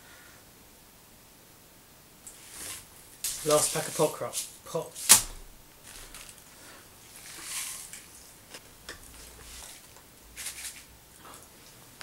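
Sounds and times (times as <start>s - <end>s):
candy rustling pour: 2.3s - 5.2s, 5.8s - 11.9s.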